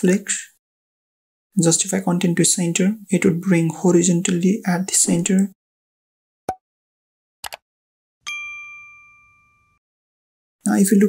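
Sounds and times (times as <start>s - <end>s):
notification bell ding: 8.2s - 9.8s.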